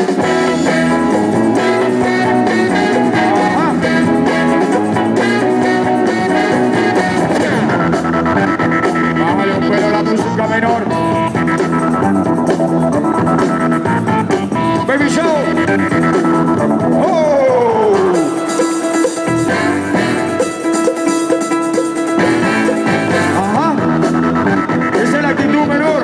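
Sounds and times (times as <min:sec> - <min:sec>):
loud breakbeat music over speakers: 0:00.0 - 0:26.0.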